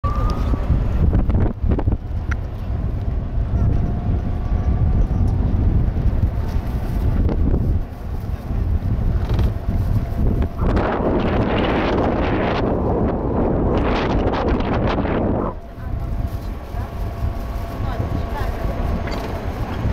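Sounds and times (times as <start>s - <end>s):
wind buffeting microphone: 0.0s - 19.9s.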